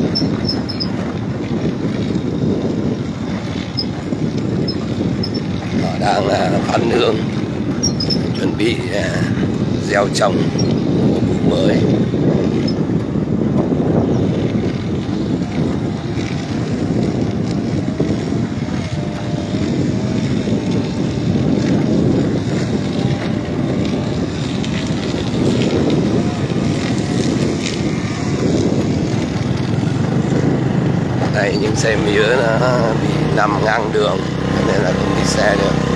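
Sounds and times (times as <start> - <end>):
motorbike engine drone: 0.0 - 35.9
wind rumble on microphone: 0.0 - 35.9.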